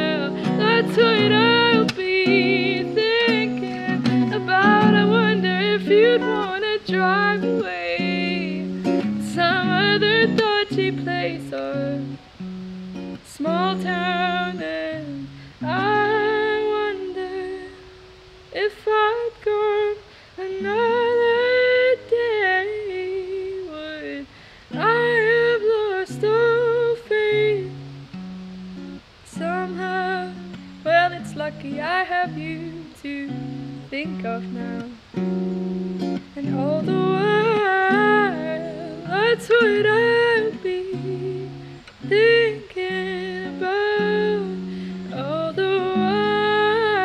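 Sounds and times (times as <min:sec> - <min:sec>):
woman singing: 0:00.0 - 0:28.1, 0:29.2 - 0:47.0
acoustic guitar: 0:00.0 - 0:47.0.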